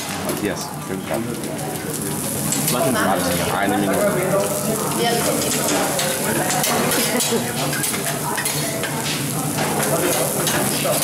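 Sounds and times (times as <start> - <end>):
food sizzling on a griddle: 0.0 - 11.0.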